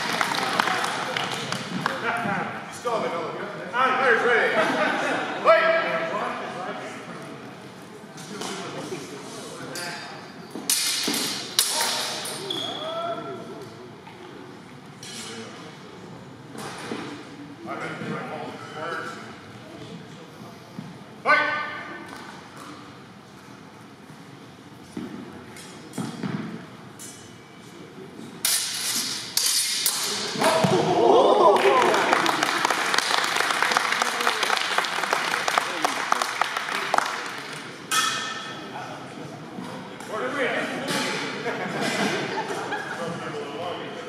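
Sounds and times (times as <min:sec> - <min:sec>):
crowd shouting and clapping: 0:00.0 - 0:02.0, 0:30.4 - 0:37.6.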